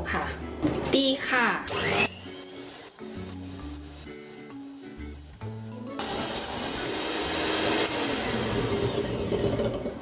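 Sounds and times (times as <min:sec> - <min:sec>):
electric hand mixer running: 0:01.7 - 0:04.0, 0:06.0 - 0:10.0.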